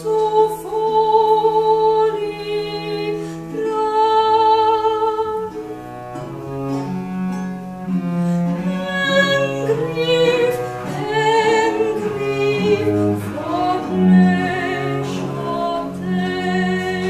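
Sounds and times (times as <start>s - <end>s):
bowed strings accompaniment: 0.0s - 17.0s
soprano singing: 0.0s - 17.0s.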